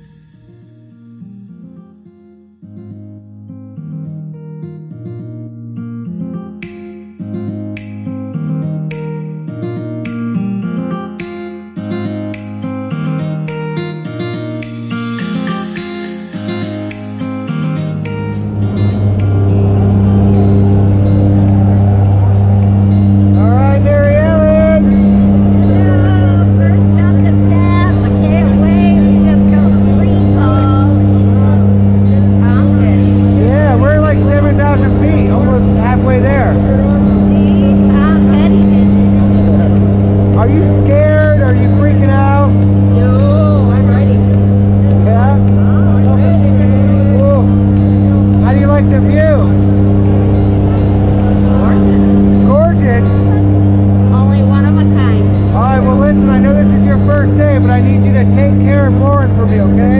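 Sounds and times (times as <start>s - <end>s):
propeller engines droning: 14.7s - 59.9s
indistinct voices: 18.1s - 59.9s.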